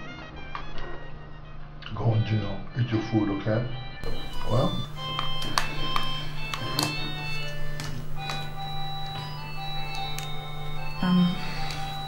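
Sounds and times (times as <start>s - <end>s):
electronic keyboard tones: 4.0s - 12.0s.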